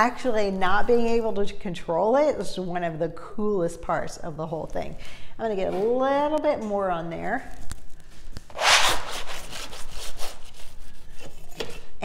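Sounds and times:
metal trowel scraping canvas: 8.5s - 11.9s.

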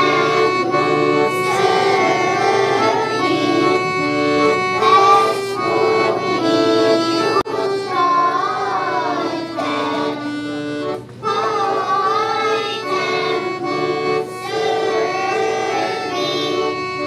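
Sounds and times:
accordion: 0.0s - 17.0s
children's choir singing: 0.0s - 17.0s.

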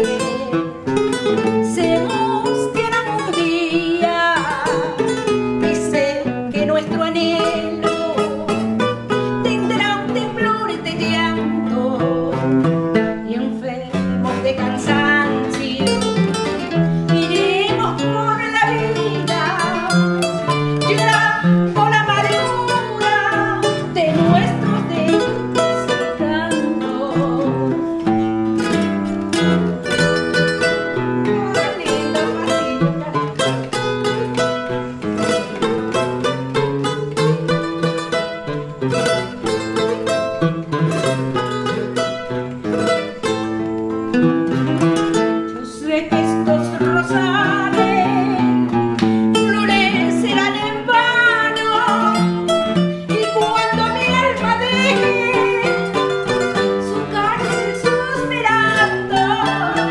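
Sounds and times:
woman singing: 0.0s - 40.4s, 41.0s - 59.9s
guitar strummed accompaniment: 0.0s - 59.9s
requinto picking melodic runs: 0.0s - 59.9s.

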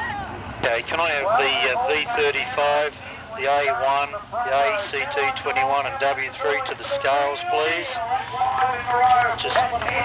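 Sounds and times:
race car engines running: 0.0s - 10.0s
man making announcements: 0.6s - 10.0s.

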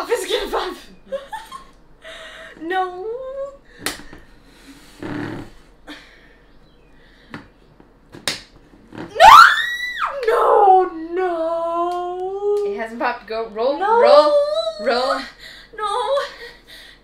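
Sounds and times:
girl's high-pitched squeal: 9.1s - 10.8s.

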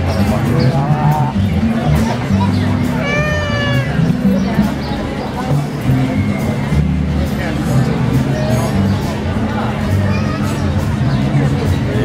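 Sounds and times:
crowd chatter: 0.0s - 12.0s
outdoor music: 0.0s - 12.0s.

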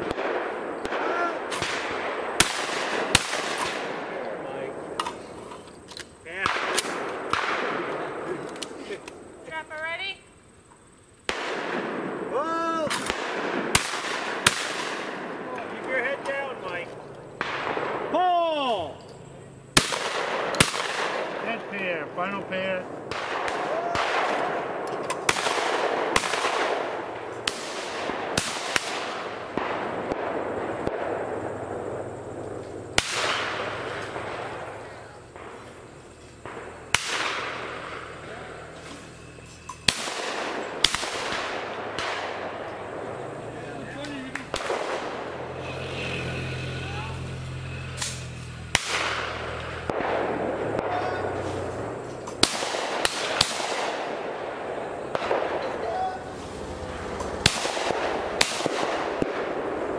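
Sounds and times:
shotgun shots echoing: 0.0s - 5.4s, 6.2s - 9.3s, 11.3s - 18.7s, 19.7s - 46.5s, 47.4s - 59.9s.

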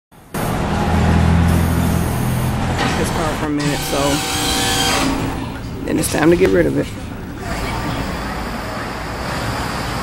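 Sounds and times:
low background rumble: 3.8s - 8.8s.

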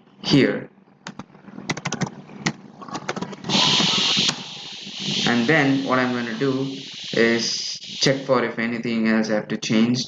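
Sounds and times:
keyboard typing clicks: 1.0s - 3.3s
loud hiss: 3.5s - 8.8s.

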